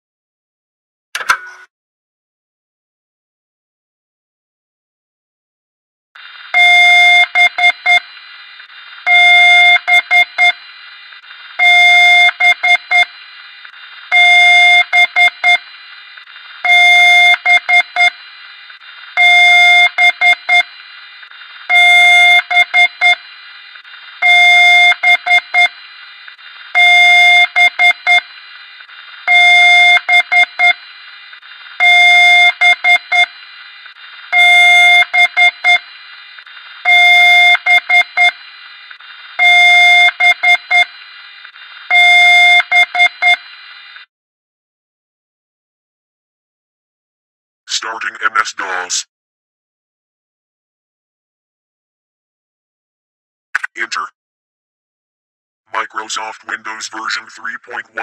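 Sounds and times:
computer speaker beeping: 0:47.7 - 0:49.1, 0:53.6 - 0:54.1, 0:55.7 - 0:58.0.

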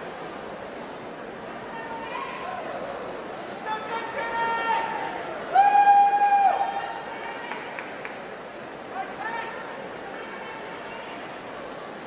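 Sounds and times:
faint arena hubbub: 0:00.0 - 0:12.0.

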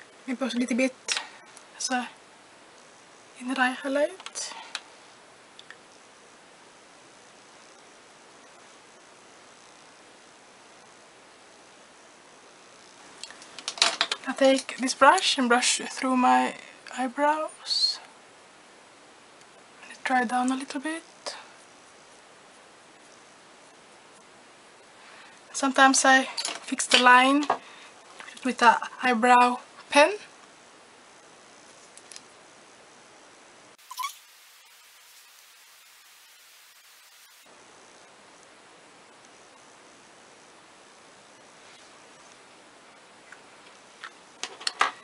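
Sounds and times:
room tone hiss: 0:00.0 - 0:45.0.

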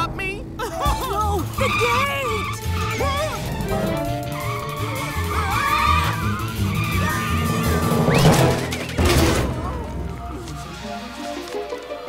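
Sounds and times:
background music: 0:00.0 - 0:12.0
cartoon tyres squealing: 0:01.3 - 0:09.6.

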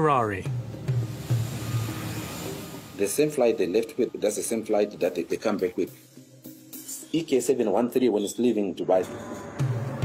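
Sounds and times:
background music: 0:00.0 - 0:10.0
jet engines hissing: 0:00.4 - 0:05.3.

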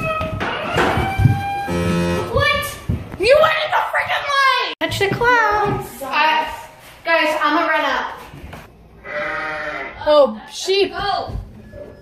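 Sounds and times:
long electronic tones: 0:01.0 - 0:02.4
low electronic buzz: 0:01.6 - 0:02.4.

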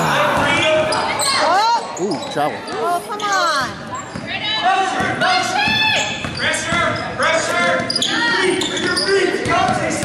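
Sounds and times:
voices in gym: 0:00.0 - 0:10.0
sneakers squeaking on floor: 0:00.4 - 0:10.0.

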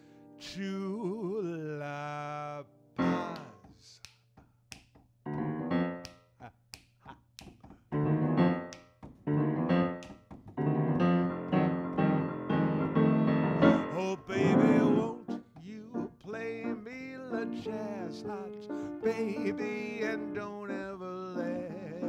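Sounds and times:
upright piano jazzy chords: 0:03.0 - 0:03.5, 0:05.3 - 0:06.1, 0:07.9 - 0:22.0
finger snaps: 0:03.1 - 0:05.0, 0:05.9 - 0:07.7, 0:08.5 - 0:09.0, 0:09.9 - 0:10.2.

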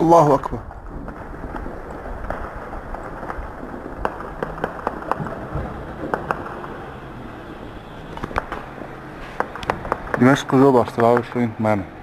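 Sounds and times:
distant gunfire cracks: 0:00.7 - 0:07.2, 0:08.0 - 0:11.4.

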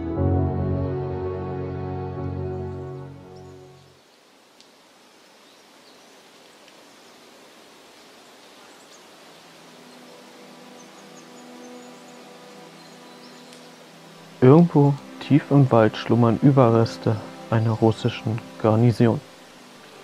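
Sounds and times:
wind through trees: 0:02.4 - 0:20.0
low held musical tone: 0:09.6 - 0:20.0.

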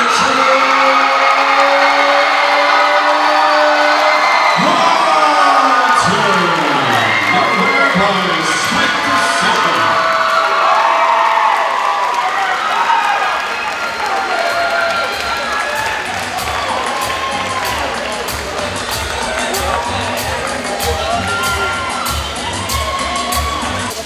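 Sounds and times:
crowd cheering and yelling: 0:00.0 - 0:24.0.

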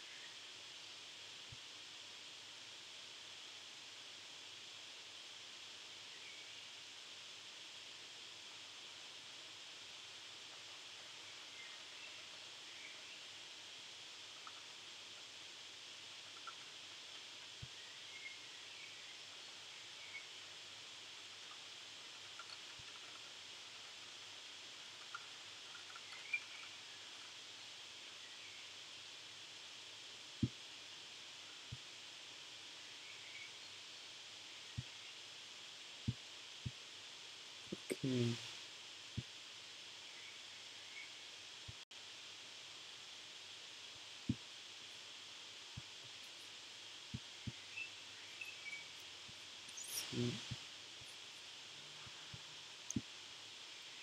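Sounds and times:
faint steady hiss: 0:00.0 - 0:54.0.

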